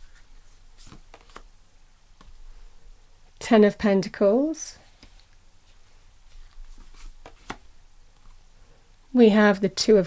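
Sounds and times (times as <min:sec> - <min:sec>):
cards clicking and sliding: 0:00.8 - 0:01.5.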